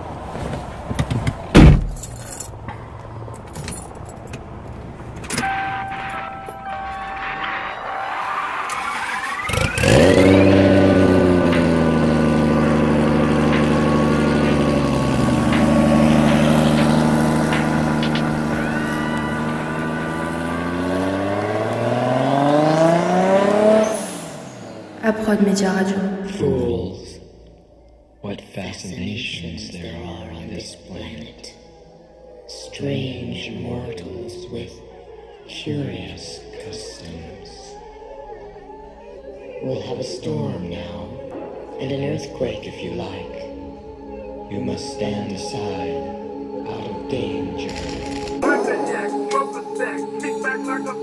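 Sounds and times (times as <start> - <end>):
car engine starting and revving: 0.0 - 51.0
rising starter whine: 0.0 - 51.0
loud thump: 1.0 - 2.0.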